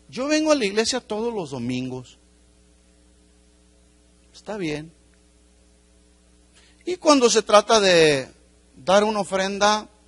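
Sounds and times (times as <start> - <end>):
faint electrical mains hum: 0.0 - 10.0
person speaking: 4.3 - 5.0, 6.8 - 10.0.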